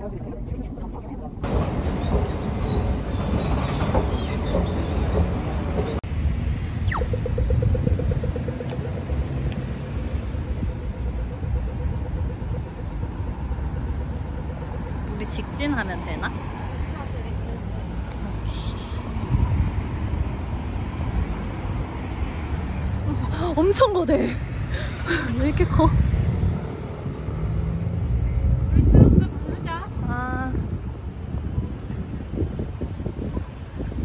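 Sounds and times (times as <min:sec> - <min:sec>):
passing traffic: 0:00.0 - 0:34.0
steady low rumble: 0:05.9 - 0:21.0
crossing signal ticking: 0:06.9 - 0:18.3.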